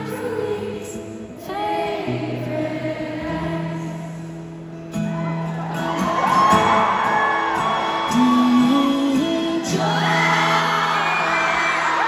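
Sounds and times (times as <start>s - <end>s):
live acoustic guitar song: 0.0s - 12.0s
audience whooping: 5.0s - 12.0s.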